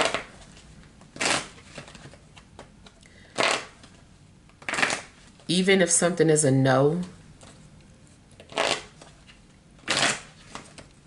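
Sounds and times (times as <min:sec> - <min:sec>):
cards sliding rustle: 0:00.0 - 0:04.0, 0:07.4 - 0:10.9.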